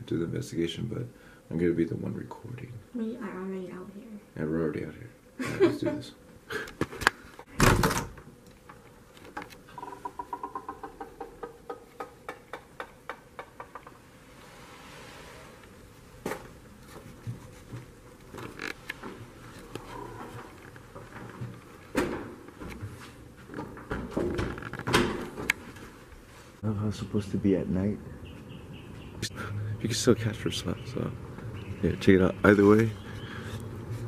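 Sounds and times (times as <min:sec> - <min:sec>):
door shutting with a thud: 0:07.5 - 0:08.3, 0:21.9 - 0:22.4, 0:23.8 - 0:25.5
soft knocks of walking: 0:16.1 - 0:26.3.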